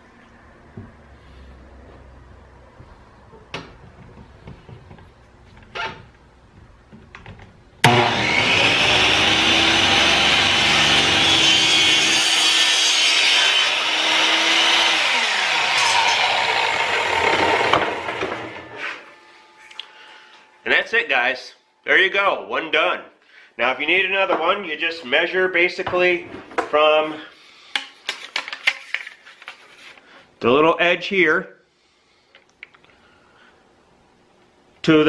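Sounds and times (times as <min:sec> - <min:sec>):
chop saw cutting plastic pipe: 0:07.8 - 0:18.7.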